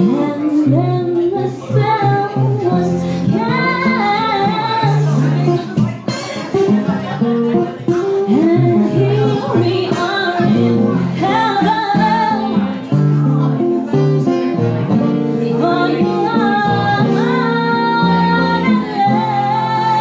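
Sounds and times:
woman singing: 0:00.0 - 0:06.1, 0:07.9 - 0:13.0, 0:15.2 - 0:20.0
acoustic guitar: 0:00.0 - 0:20.0.

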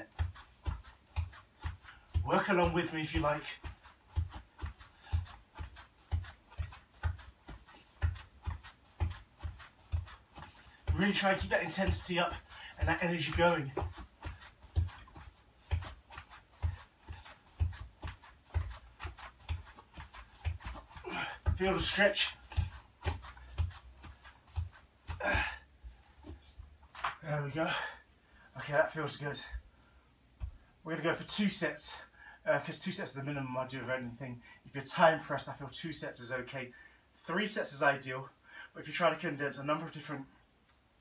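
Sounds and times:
feet thudding on exercise mat: 0:00.0 - 0:27.9.

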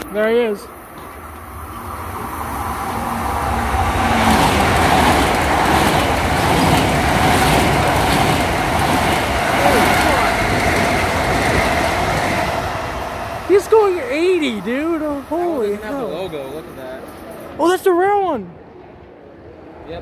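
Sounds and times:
train wheels rumbling on rails: 0:00.0 - 0:17.8
steady train whine: 0:00.0 - 0:20.0.

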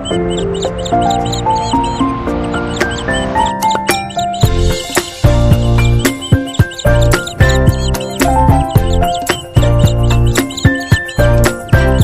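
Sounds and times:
music with bass and beat: 0:00.0 - 0:12.0.

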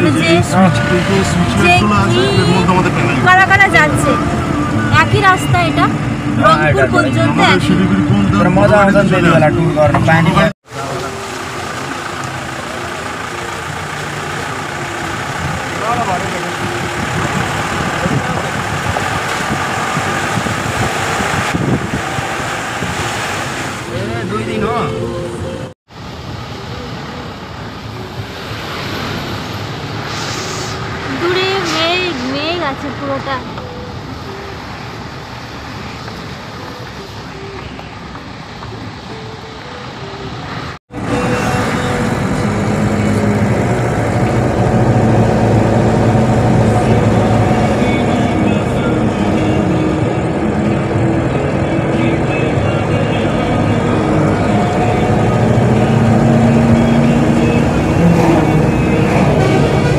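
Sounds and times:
people talking: 0:00.0 - 0:04.2, 0:04.9 - 0:11.3, 0:15.6 - 0:16.9, 0:23.9 - 0:25.1, 0:31.1 - 0:33.6
vehicle engine and road noise: 0:00.0 - 0:59.9.

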